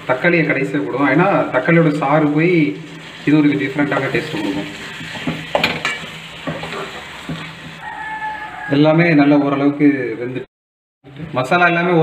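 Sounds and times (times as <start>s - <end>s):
masala sizzling in a pan: 0.0s - 8.7s
spoon scraping and knocking a pan: 4.0s - 7.8s.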